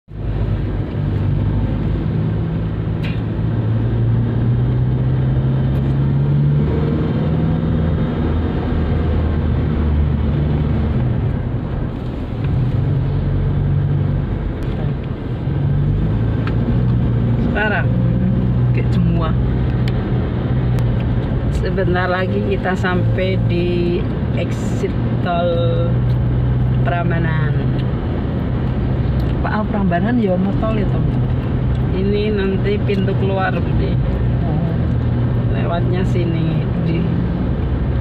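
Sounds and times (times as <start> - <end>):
road noise: 0.0 - 38.0
car engine hum: 0.1 - 38.0.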